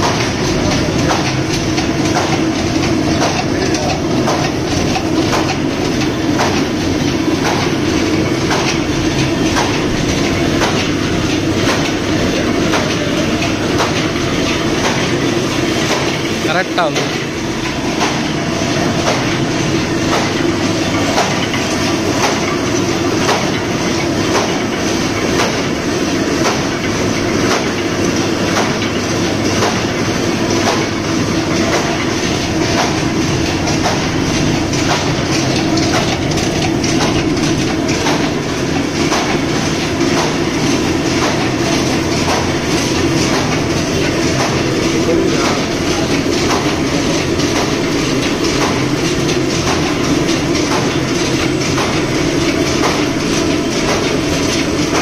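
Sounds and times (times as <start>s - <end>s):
paper cutting machine running: 0.0s - 55.0s.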